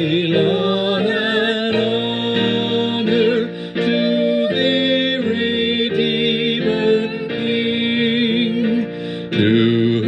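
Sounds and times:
congregation singing a hymn: 0:00.0 - 0:10.0.

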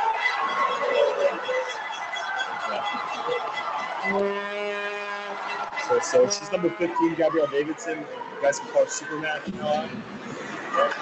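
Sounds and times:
crowd cheering: 0:00.0 - 0:11.0
goal horn: 0:01.2 - 0:07.3.

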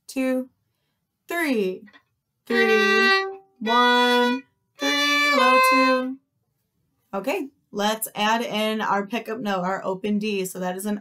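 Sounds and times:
violin bowed slowly: 0:02.5 - 0:06.2.

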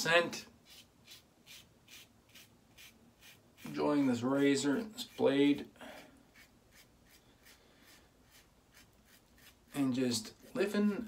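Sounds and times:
razor scraping stubble: 0:00.6 - 0:05.5, 0:06.3 - 0:11.0.

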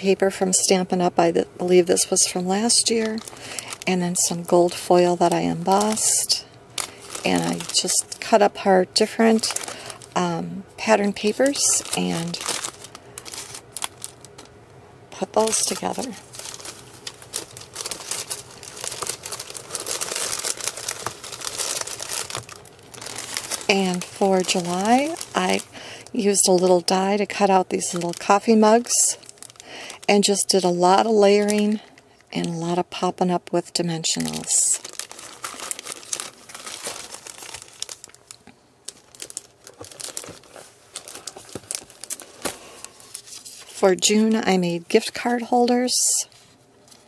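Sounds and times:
plastic sleeves crinkling: 0:00.0 - 0:33.1, 0:34.0 - 0:47.0.

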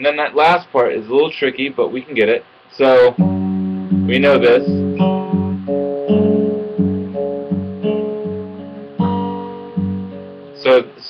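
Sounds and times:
fingerpicked acoustic guitar: 0:03.2 - 0:10.6.

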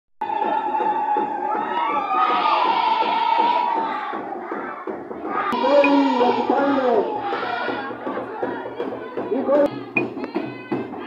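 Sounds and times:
children shouting and cheering: 0:00.2 - 0:11.0.

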